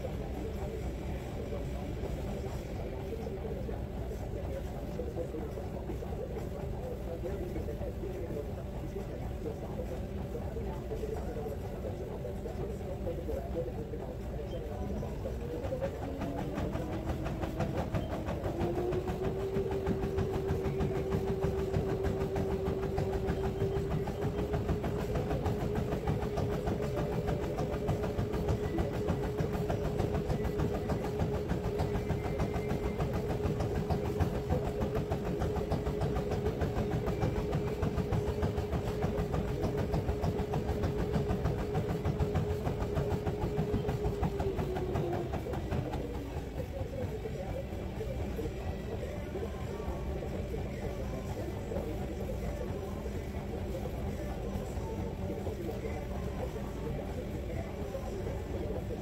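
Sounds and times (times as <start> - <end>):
treadmill motor whining: 0.0 - 59.0.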